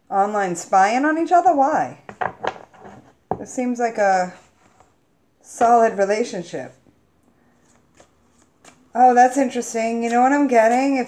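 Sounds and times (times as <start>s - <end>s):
cards being shuffled: 7.6s - 8.9s.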